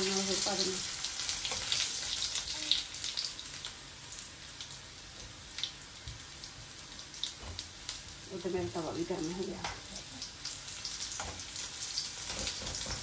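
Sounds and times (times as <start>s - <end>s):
food sizzling in oil: 0.0s - 13.0s.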